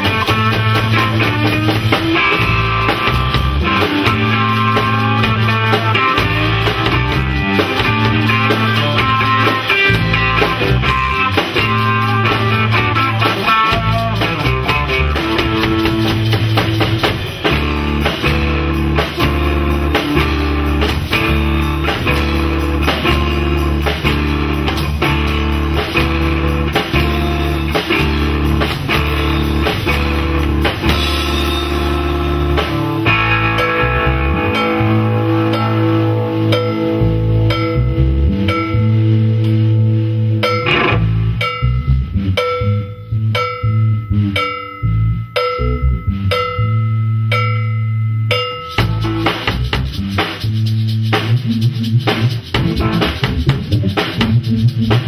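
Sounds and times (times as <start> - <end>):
electric guitar: 0.0 - 46.6, 48.6 - 55.0
drum kit: 0.0 - 55.0
electric bass: 0.0 - 55.0.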